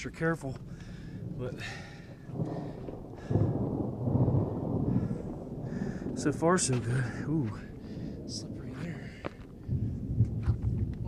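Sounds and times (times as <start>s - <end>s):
low rough rumble: 0.0s - 11.0s.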